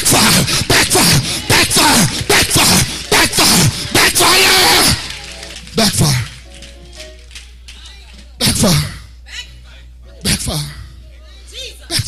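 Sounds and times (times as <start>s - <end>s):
preacher shouting: 0.0s - 5.1s
steady low hum: 0.0s - 12.0s.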